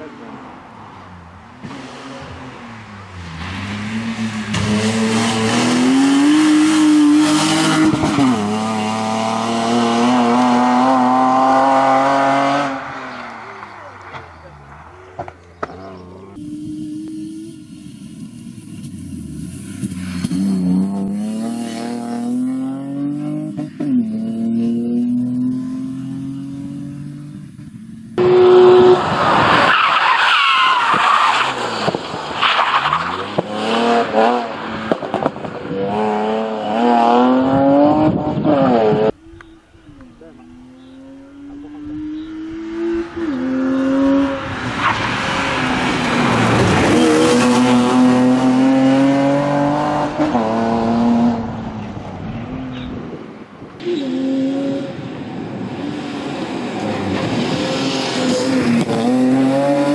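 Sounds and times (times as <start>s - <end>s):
rally car engine revving: 1.2s - 59.9s.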